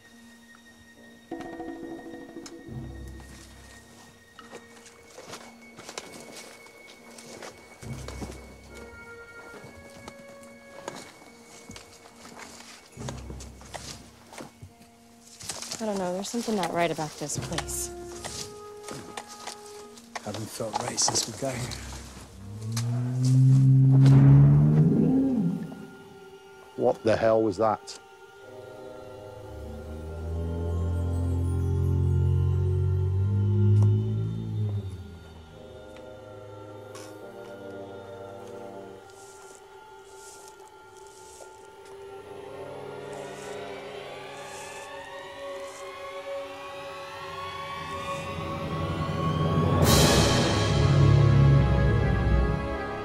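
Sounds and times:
suspense film score drone: 0:00.0 - 0:14.8, 0:15.4 - 0:53.0
dinosaur roar: 0:22.4 - 0:26.0.

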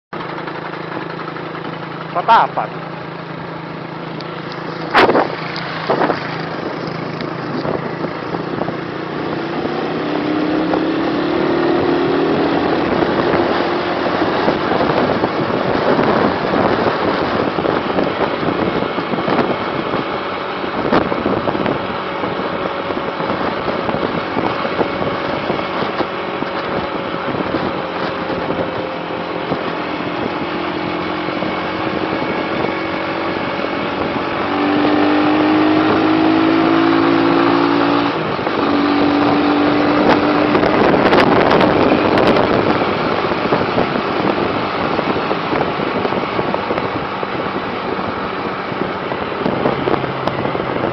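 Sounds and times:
vehicle engine running: 0:00.1 - 0:50.9
wind and road noise: 0:00.1 - 0:50.9.

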